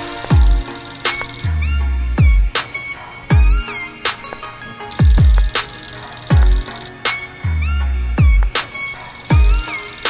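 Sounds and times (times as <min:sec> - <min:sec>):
high bell-like synth tone: 0:00.0 - 0:03.9, 0:04.9 - 0:10.0.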